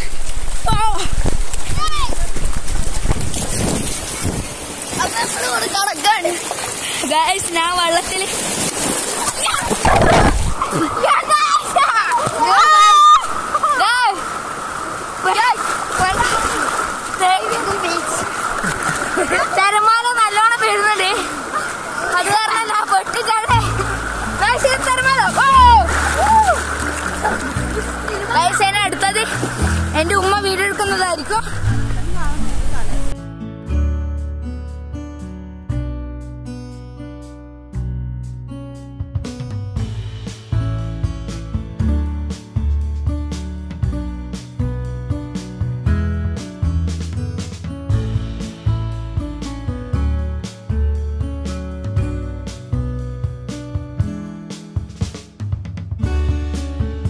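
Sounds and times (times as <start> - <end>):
water splashing: 0.0 - 33.2
boys shouting: 9.2 - 14.2, 24.4 - 27.4
acoustic guitar chords strummed: 56.0 - 57.0.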